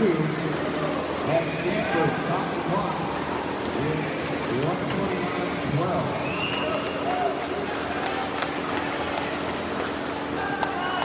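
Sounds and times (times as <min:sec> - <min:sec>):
crowd shouting and cheering: 0:00.0 - 0:02.7, 0:06.0 - 0:11.0
swimmers splashing: 0:00.0 - 0:11.0.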